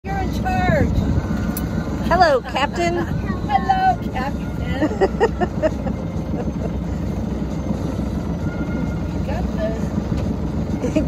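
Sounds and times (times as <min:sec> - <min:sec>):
boat motor rumbling: 0:00.0 - 0:11.0.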